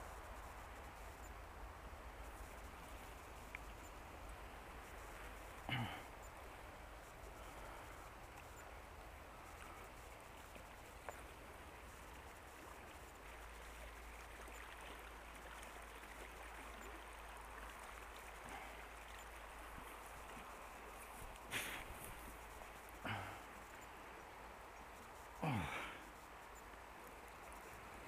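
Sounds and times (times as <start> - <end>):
faint river water flowing: 0.0 - 28.0.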